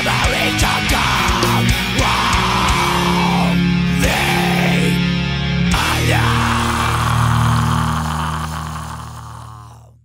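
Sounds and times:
distorted guitars and bass chord: 0:00.0 - 0:10.0.

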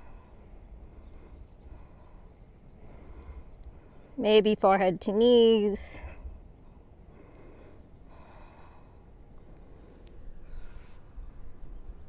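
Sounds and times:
woman breathing softly: 0:00.0 - 0:04.2, 0:07.0 - 0:11.6
faint low rumble: 0:00.0 - 0:12.0.

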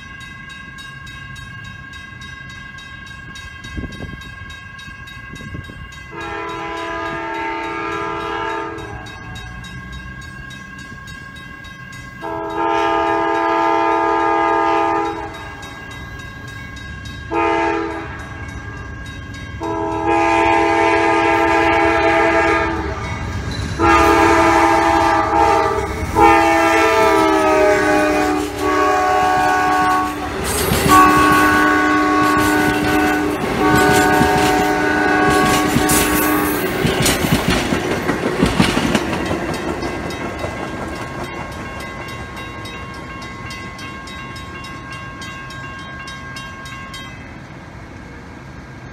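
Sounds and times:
locomotive air horn blasts: 0:06.1 - 0:09.4, 0:12.2 - 0:15.6, 0:17.3 - 0:18.4, 0:19.6 - 0:23.2, 0:23.8 - 0:36.7
train cars clattering over rail joints: 0:28.1 - 0:43.6.

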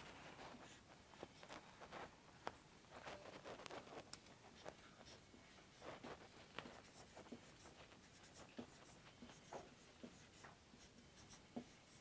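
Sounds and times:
marker pen writing on whiteboard: 0:04.4 - 0:12.0.

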